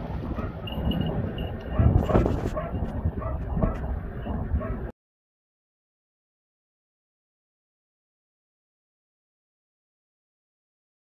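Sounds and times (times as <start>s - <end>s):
dog barking and yipping: 0.3s - 4.9s.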